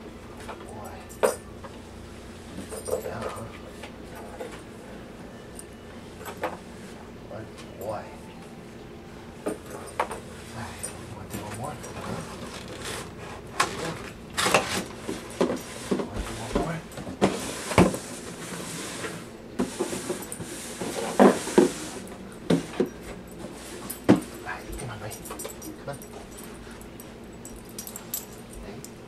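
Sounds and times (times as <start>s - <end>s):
dog collar jingling: 9.5s - 13.1s, 22.9s - 29.0s.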